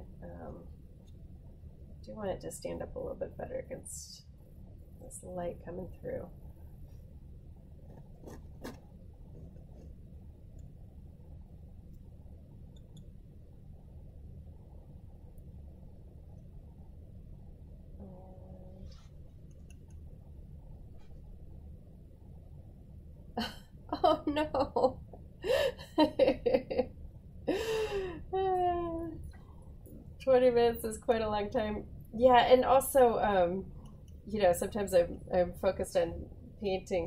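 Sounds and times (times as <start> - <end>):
woman talking: 0.0 - 0.7, 2.1 - 4.2, 5.0 - 6.3, 18.0 - 18.8, 23.4 - 26.8, 28.0 - 29.2, 30.2 - 33.7, 34.3 - 37.0
steady low hum: 0.0 - 37.0.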